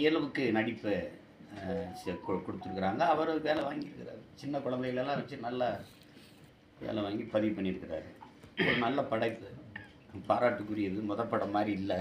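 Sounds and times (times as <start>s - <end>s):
man speaking: 0.0s - 5.9s
two-note electronic chime: 1.9s - 3.2s.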